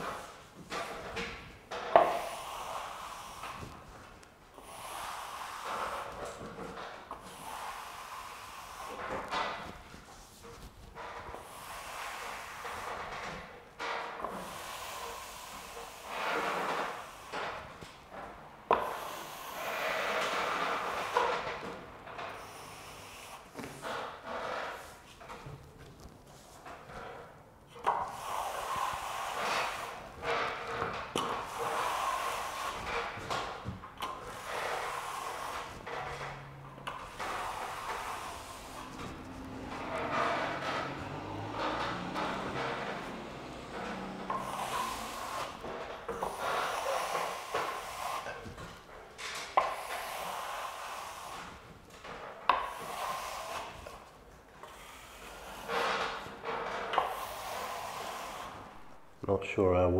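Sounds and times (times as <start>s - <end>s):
trowel scraping plaster: 27.8s - 59.0s.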